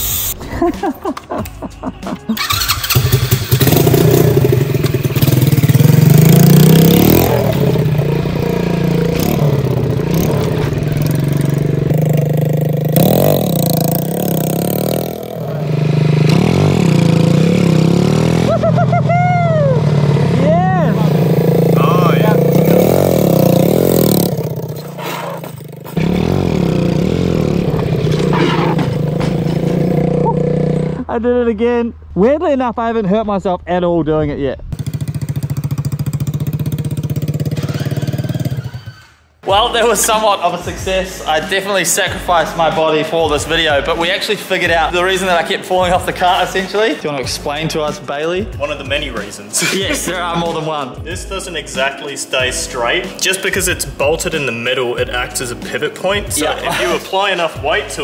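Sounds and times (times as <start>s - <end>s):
kart engine revving: 2.4s - 31.0s, 34.8s - 39.6s.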